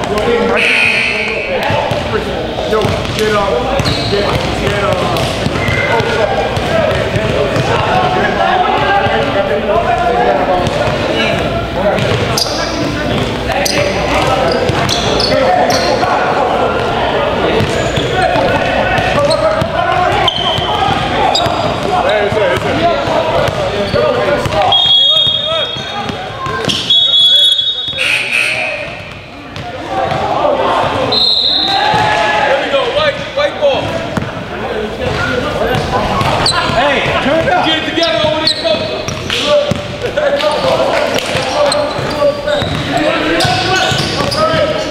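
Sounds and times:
basketball dribbling echoing: 0.0 - 32.2, 32.9 - 44.9
voices talking: 0.0 - 44.9
basketball bouncing on gym floor: 2.8 - 7.8, 10.6 - 12.3, 41.9 - 44.8.

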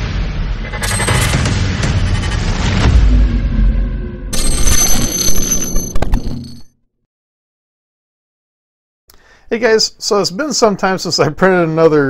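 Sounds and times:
deep boom: 0.0 - 4.4.

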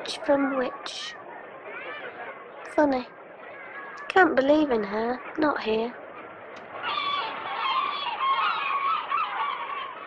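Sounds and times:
gulls calling: 0.0 - 10.0.

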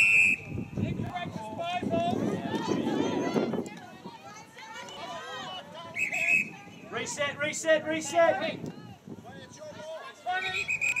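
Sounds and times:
whistle blast: 0.0 - 0.7, 5.9 - 6.6, 10.5 - 11.0.

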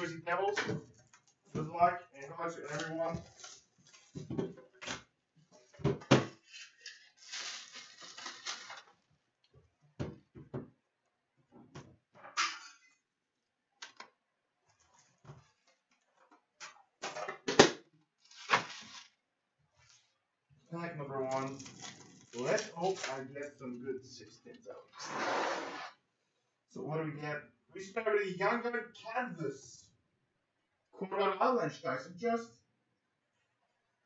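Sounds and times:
foil packs crinkling: 6.8 - 9.1, 18.2 - 19.2, 21.3 - 23.2.

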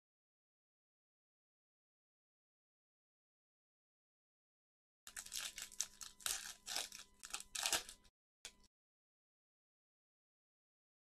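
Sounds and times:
wrapper tearing and crinkling: 5.1 - 8.1.

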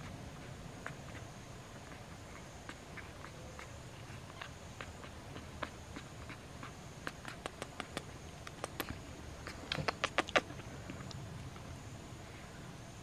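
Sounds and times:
monkey kissing smacks: 4.8 - 11.2.

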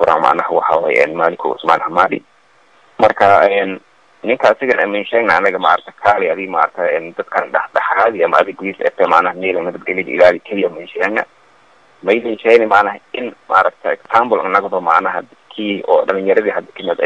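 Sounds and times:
man speaking into microphone: 0.0 - 2.2, 3.0 - 11.3, 12.0 - 17.0.

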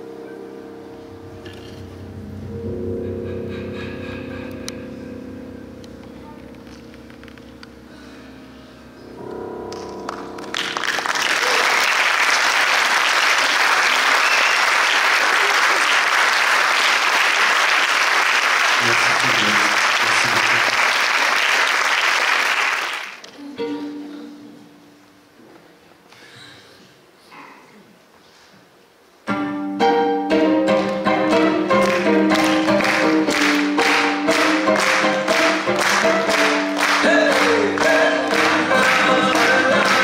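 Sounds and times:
piano and acoustic guitar chord: 0.0 - 11.1, 29.3 - 40.0
audience applause: 10.1 - 23.2, 31.6 - 40.0.

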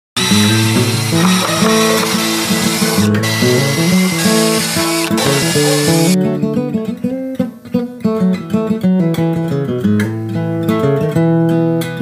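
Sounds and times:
cordless drill whine: 0.2 - 6.2
acoustic guitar music: 0.2 - 12.0.

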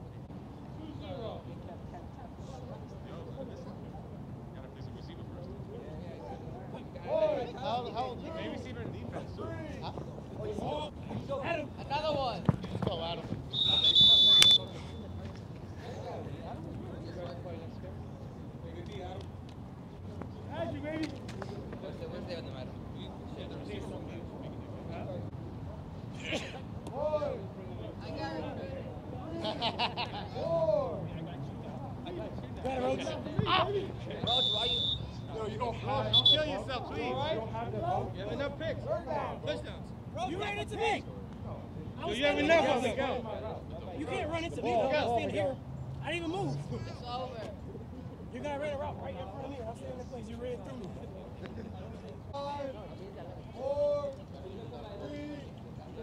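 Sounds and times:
men talking: 0.5 - 56.0
referee's whistle blast: 13.5 - 15.1, 34.2 - 35.3, 36.1 - 36.5.

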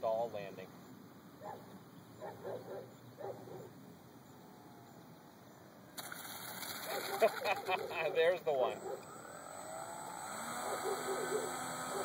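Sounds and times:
dog barking: 1.4 - 3.7, 8.8 - 9.0, 10.6 - 12.0.

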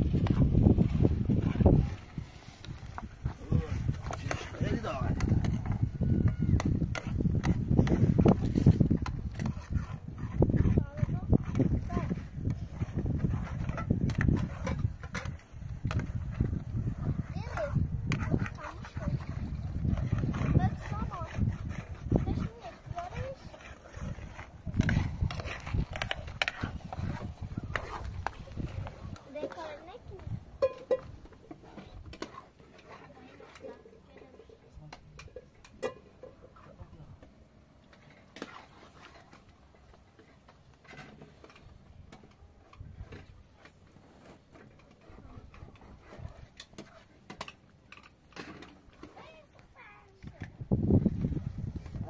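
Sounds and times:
people talking indistinctly: 17.2 - 24.3, 29.2 - 30.4.

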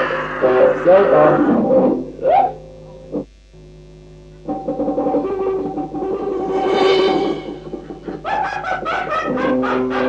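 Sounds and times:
distorted metal guitar: 4.3 - 8.8.

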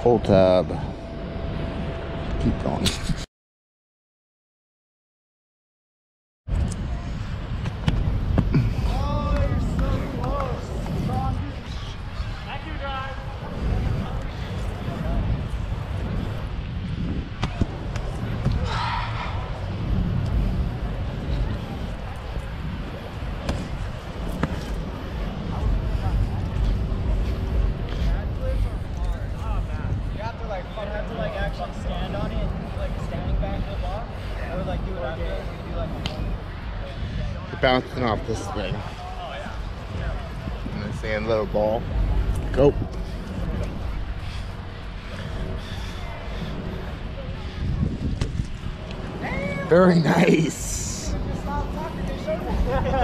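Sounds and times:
wind rumbling on microphone: 0.1 - 3.3, 6.5 - 53.0
people talking and calling: 6.7 - 53.0.

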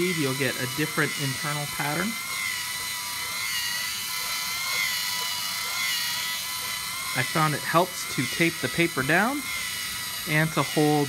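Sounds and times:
electric motors whining: 0.0 - 11.0.

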